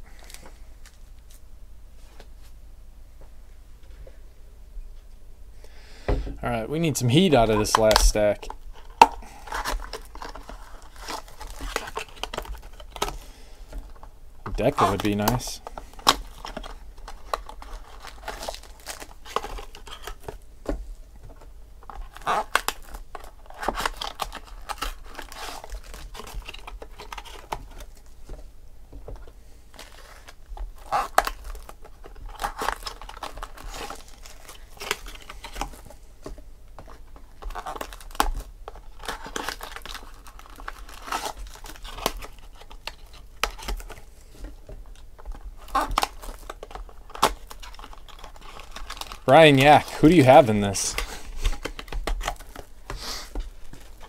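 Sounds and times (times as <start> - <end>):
plastic wrapping crinkling and tearing: 0.0 - 1.4, 7.0 - 20.5, 21.3 - 28.4, 29.1 - 54.0.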